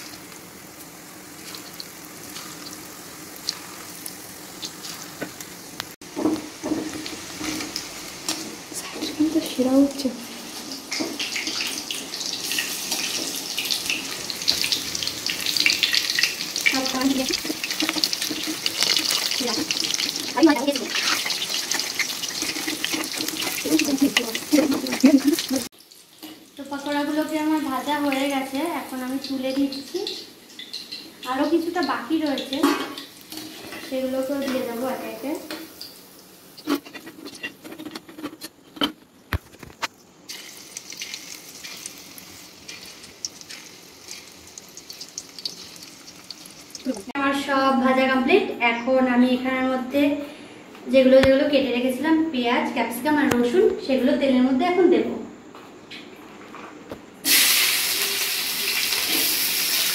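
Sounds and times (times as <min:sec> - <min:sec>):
food sizzling in hot oil: 0:00.0 - 0:38.3, 0:39.9 - 0:48.0, 0:57.2 - 0:59.9.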